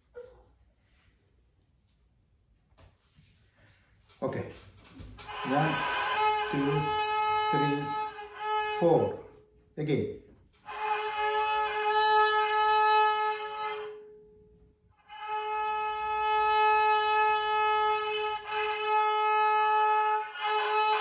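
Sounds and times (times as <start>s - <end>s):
violin open string note: 5.2s - 9.3s.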